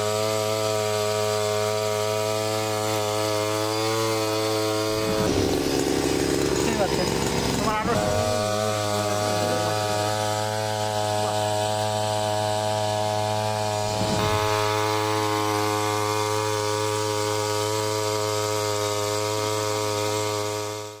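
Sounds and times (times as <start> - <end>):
small engine running at high speed: 0.0 - 21.0.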